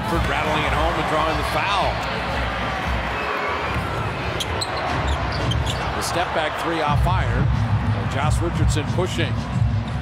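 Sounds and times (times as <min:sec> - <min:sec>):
crowd noise: 0:00.0 - 0:10.0
sneakers squeaking on floor: 0:03.4 - 0:06.0.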